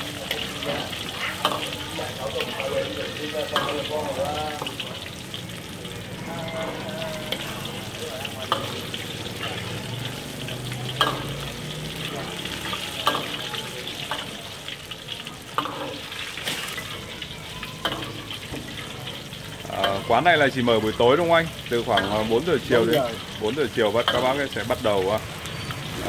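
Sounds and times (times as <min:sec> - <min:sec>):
spring rolls sizzling in hot oil: 0:00.0 - 0:26.0
metal ladle clinking on wok: 0:10.8 - 0:11.5, 0:13.0 - 0:14.3.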